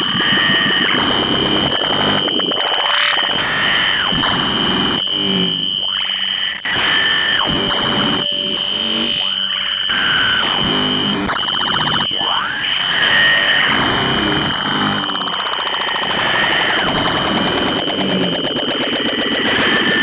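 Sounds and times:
dense layered buzzing: 0.0s - 20.0s
steady high electronic whine: 0.0s - 20.0s
sweeping electronic tones: 0.0s - 20.0s.

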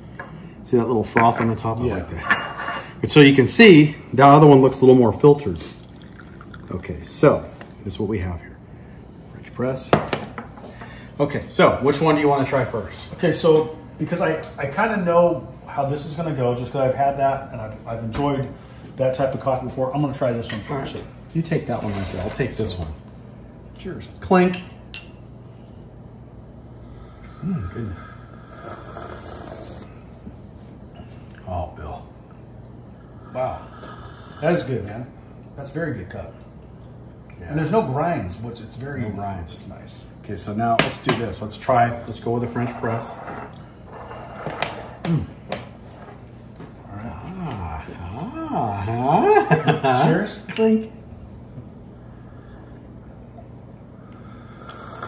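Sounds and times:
low room hum: 0.0s - 55.0s
ceramic cups clinking: 1.1s - 3.0s.

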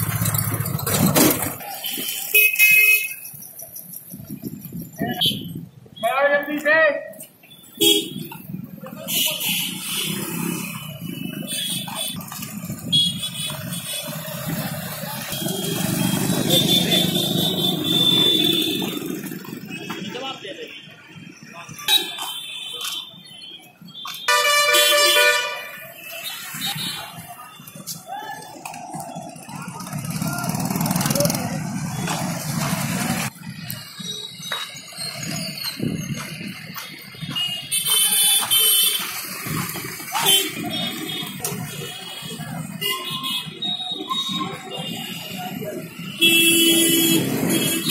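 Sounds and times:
motorcycles passing: 0.0s - 5.7s, 8.1s - 22.4s, 25.6s - 47.9s
street traffic: 0.0s - 47.9s
car horns honking: 1.8s - 3.3s, 7.7s - 8.4s, 15.2s - 19.2s, 23.9s - 27.7s, 37.2s - 39.2s, 40.1s - 47.9s
voices talking: 26.1s - 37.1s.

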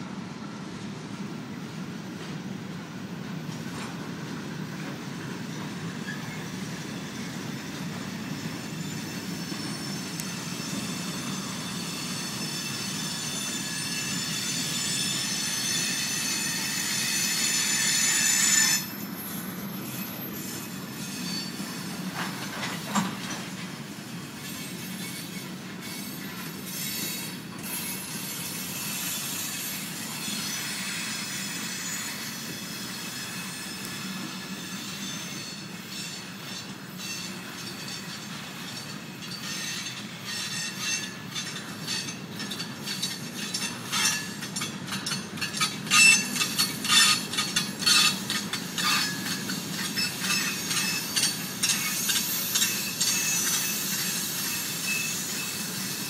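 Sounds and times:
train wheels squealing: 1.4s - 56.0s
freight cars rolling rumble: 18.8s - 35.0s, 35.6s - 53.1s.

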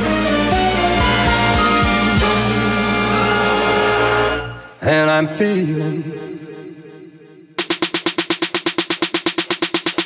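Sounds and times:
electronic snare roll: 7.6s - 10.0s.

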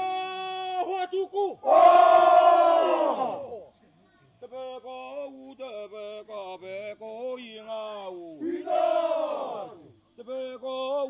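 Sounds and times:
men singing in unison: 4.5s - 11.0s.

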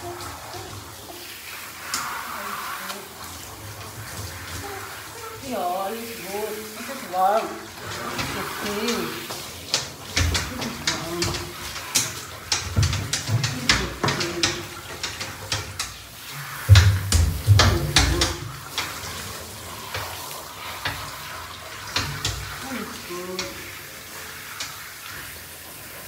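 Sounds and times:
shower spraying water on fur: 0.0s - 26.0s
water splashing: 0.0s - 26.0s
clicks and knocks: 9.7s - 16.0s, 16.6s - 18.9s.

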